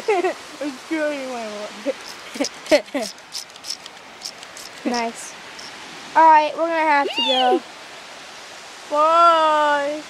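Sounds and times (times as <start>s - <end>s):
child laughing: 2.3s - 3.2s, 7.0s - 7.6s
child whining: 7.0s - 7.6s.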